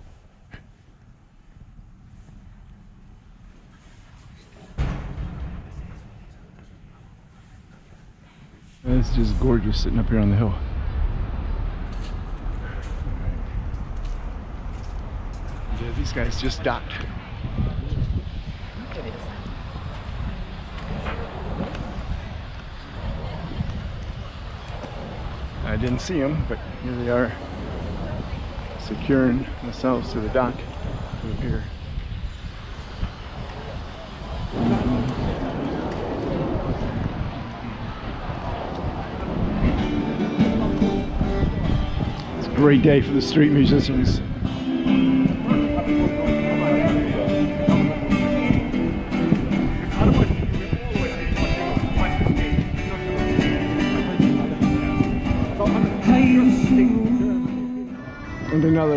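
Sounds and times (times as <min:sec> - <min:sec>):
wind buffeting microphone: 0:00.0 - 0:58.9
faint voices talking: 0:01.3 - 0:58.9
guitars playing live: 0:39.6 - 0:58.5.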